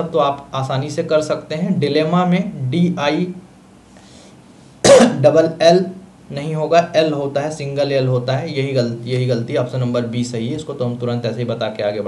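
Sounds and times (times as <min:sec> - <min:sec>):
man coughing: 0:04.8 - 0:05.3.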